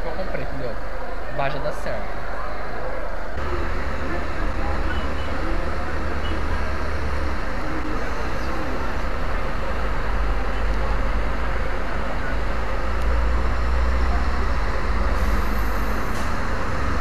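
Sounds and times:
street traffic rumble: 0.0s - 17.0s.

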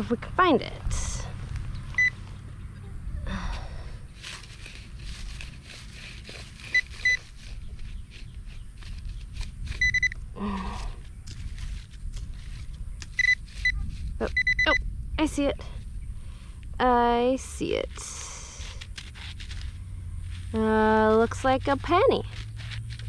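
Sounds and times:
scratching through dry grass: 4.1s - 14.7s, 18.0s - 23.0s
high-pitched probe beeps: 9.8s - 10.2s, 13.2s - 14.8s.

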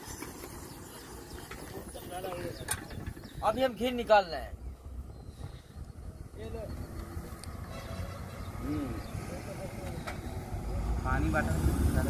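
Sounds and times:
vehicle rumble on road: 0.0s - 3.9s, 4.6s - 12.0s.

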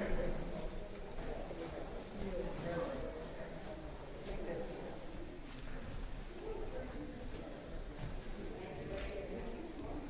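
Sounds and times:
faint footsteps and shuffling: 0.0s - 10.0s
murmur of voices: 0.0s - 10.0s.

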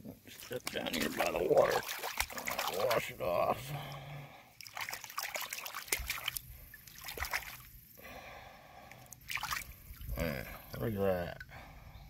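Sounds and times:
hand splashing in shallow water: 0.4s - 3.0s, 4.6s - 7.7s, 9.3s - 9.7s.

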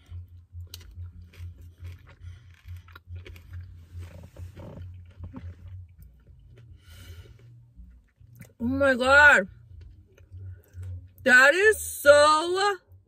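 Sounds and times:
person chewing food: 0.0s - 8.6s, 9.6s - 11.2s.

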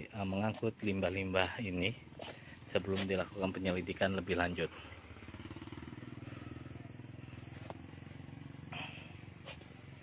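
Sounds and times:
engine running steadily: 0.0s - 10.0s.

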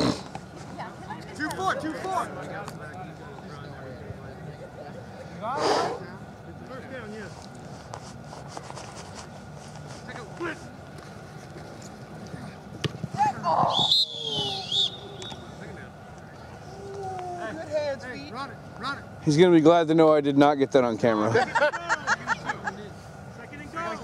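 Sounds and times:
players shouting: 13.1s - 15.6s
referee whistle warbling: 13.6s - 15.5s.

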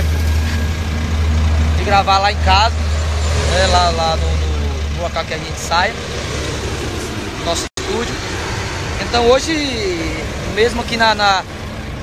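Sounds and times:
highway traffic rumble: 0.0s - 12.0s.

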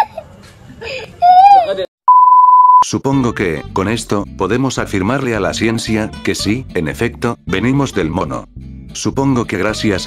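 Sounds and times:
child wailing: 1.2s - 1.9s
censor bleep: 2.1s - 2.9s.

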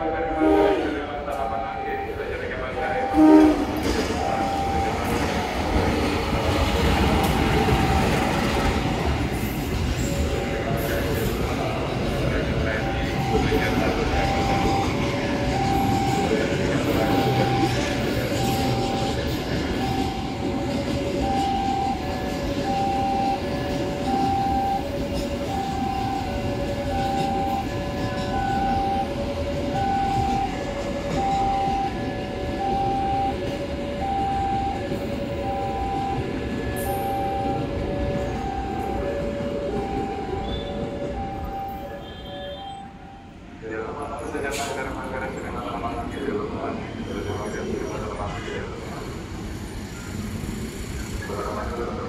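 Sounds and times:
train wagons rumbling on rails: 0.0s - 52.0s
two-note warning signal: 2.8s - 5.2s, 12.7s - 15.0s, 15.6s - 16.4s, 17.0s - 43.3s.

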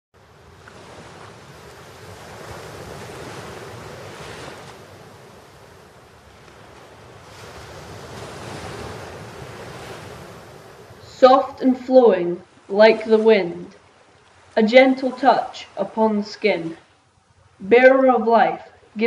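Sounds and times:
waves washing in: 0.2s - 19.0s.

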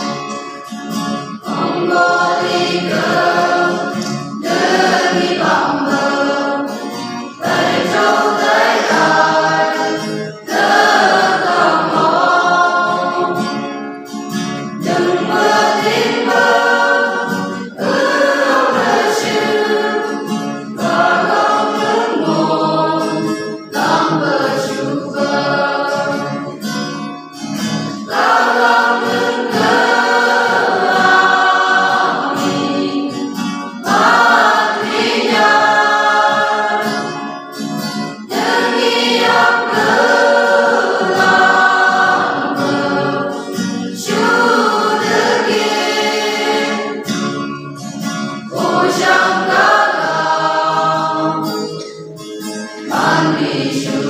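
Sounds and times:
acoustic guitar: 0.0s - 54.0s
mixed choir singing: 1.3s - 13.8s, 14.7s - 26.9s, 27.6s - 51.8s, 52.8s - 54.0s.

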